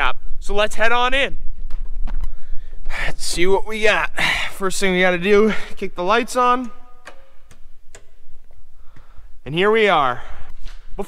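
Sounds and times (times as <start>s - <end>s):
light switches clicking: 6.3s - 9.1s.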